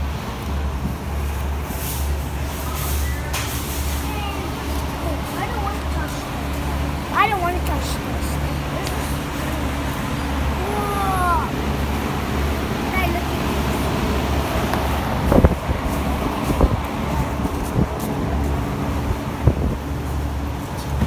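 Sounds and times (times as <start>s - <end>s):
large fan humming: 0.0s - 21.0s
high voice: 10.6s - 11.6s.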